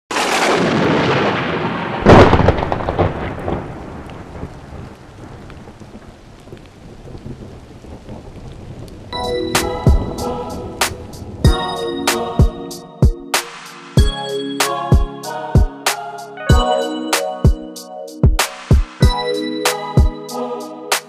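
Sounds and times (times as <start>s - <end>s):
loud thunderclap rumbling: 0.1s - 11.6s
rain hissing: 0.2s - 12.8s, 13.4s - 14.0s
music with percussive hits: 9.2s - 20.3s.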